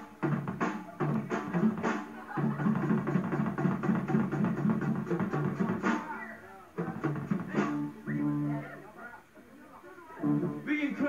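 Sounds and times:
fast repeated low riff: 0.0 - 6.2, 6.8 - 8.8, 10.2 - 11.0
drum kit: 0.0 - 8.6.

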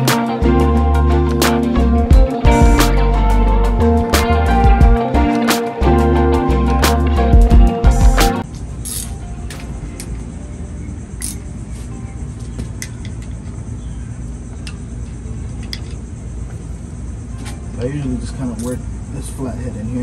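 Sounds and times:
hand tools clicking on metal: 18.5 - 18.8.

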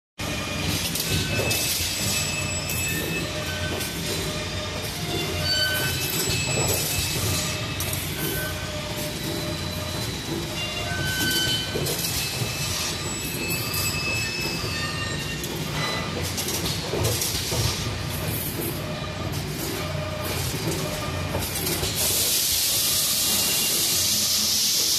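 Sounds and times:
factory machinery noise: 0.2 - 24.9
machine whine: 0.2 - 24.9.

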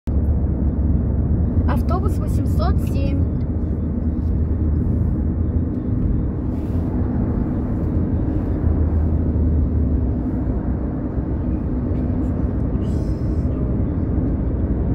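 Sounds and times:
bus engine and road rumble: 0.0 - 14.9.

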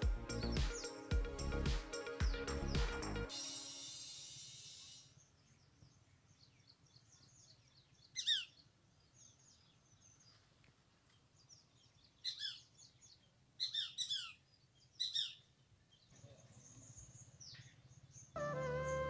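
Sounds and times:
high falling bird calls: 4.5 - 10.4, 11.1 - 19.0
faint bird chirps: 4.6 - 19.0.

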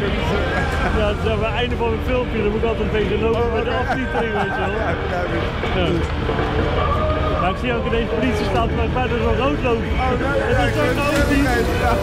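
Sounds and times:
men talking: 0.0 - 6.3, 7.4 - 12.0.

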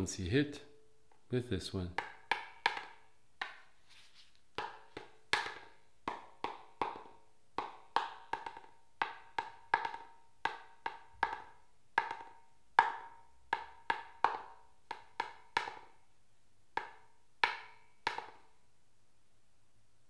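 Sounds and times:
stick knocking on wooden block: 1.9 - 3.7, 4.6 - 16.0, 16.8 - 18.5.

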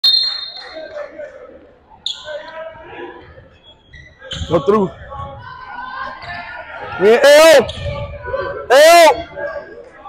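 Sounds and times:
referee's whistle: 0.0 - 0.9, 2.0 - 2.5
voices around court: 0.0 - 10.0.

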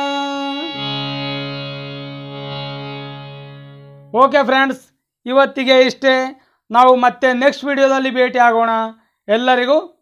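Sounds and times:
harmonium sustained notes: 0.0 - 4.6.

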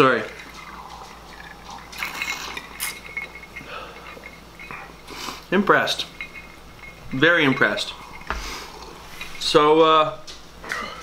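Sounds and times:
ice clinking against glass: 0.0 - 9.6
faint glassy ringing: 0.0 - 11.0.

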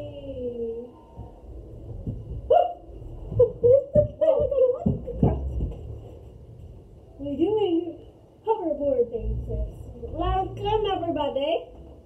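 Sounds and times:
low thumps: 1.1 - 6.9.

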